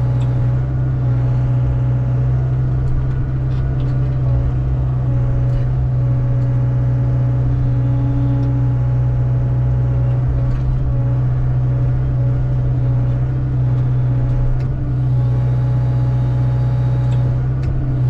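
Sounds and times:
excavator diesel engine running: 0:00.0 - 0:18.0.

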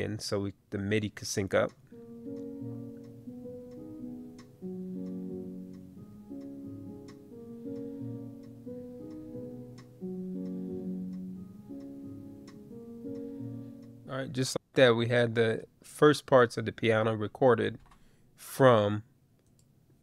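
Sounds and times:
metronome click ticking: 0:01.6 - 0:14.1
piano playing sustained chords: 0:01.9 - 0:14.3.

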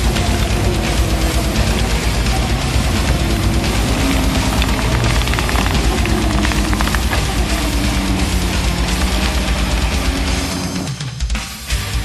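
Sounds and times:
engine running under load: 0:00.0 - 0:11.0
rapid clatter of tracks: 0:00.0 - 0:11.5.

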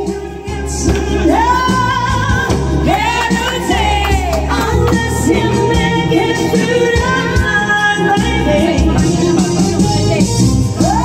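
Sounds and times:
backing track music: 0:00.0 - 0:11.0
woman singing karaoke: 0:00.0 - 0:11.0.

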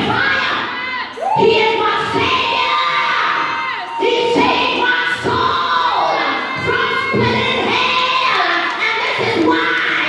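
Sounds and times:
audience shouting and cheering: 0:00.0 - 0:10.0
woman singing into microphone: 0:00.0 - 0:10.0.

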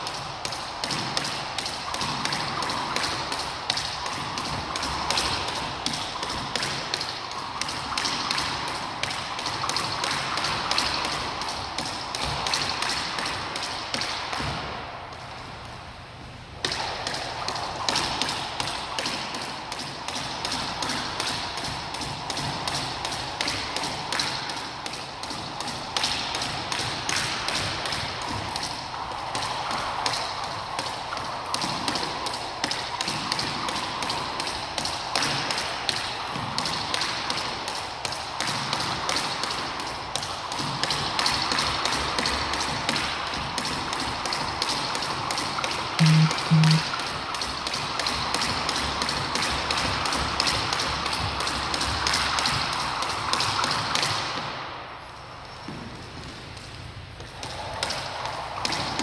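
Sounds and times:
jump rope striking wooden floor: 0:00.0 - 0:14.9, 0:16.6 - 0:54.7, 0:57.2 - 0:59.0
short low beeps: 0:46.0 - 0:46.8.

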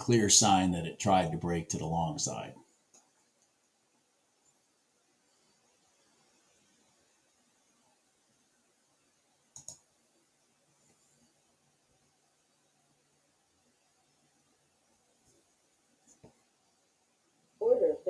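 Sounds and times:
computer mouse clicks: 0:09.5 - 0:09.9.

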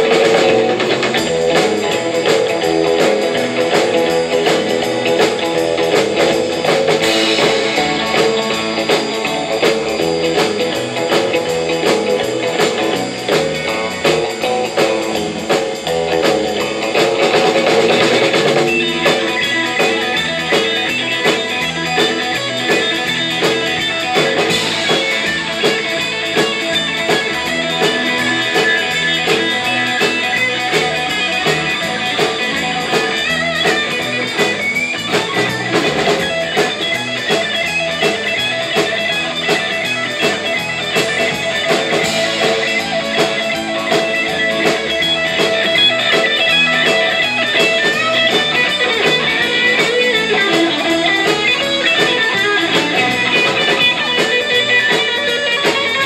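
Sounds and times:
drum kit beat: 0:00.0 - 0:56.0
electric guitars: 0:00.0 - 0:56.0.

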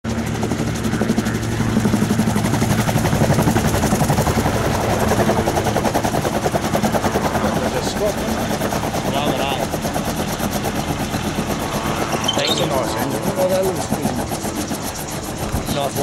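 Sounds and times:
rotor beating: 0:03.5 - 0:16.0
gyroplane engine running: 0:03.8 - 0:16.0.

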